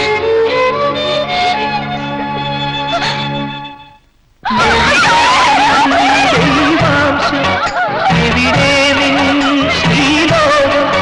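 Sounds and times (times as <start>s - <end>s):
film soundtrack music: 0.0s - 11.0s.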